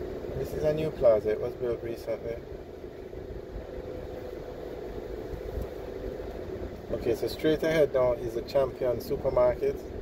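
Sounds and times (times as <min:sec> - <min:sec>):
car cabin rumble and hum: 0:00.0 - 0:10.0.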